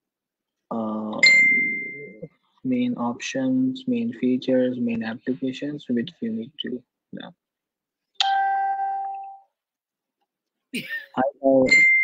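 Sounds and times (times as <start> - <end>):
bell-like ding: 1.2 - 2.2, 8.2 - 9.4, 11.7 - 12.0.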